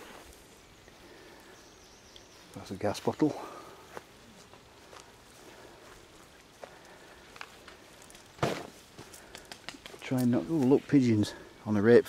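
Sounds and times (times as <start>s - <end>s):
soft footsteps on grass: 0.0s - 12.0s.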